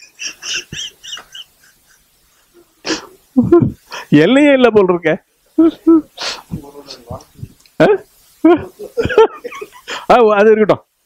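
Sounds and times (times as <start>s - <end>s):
person laughing softly: 0.0s - 4.1s, 7.8s - 10.1s.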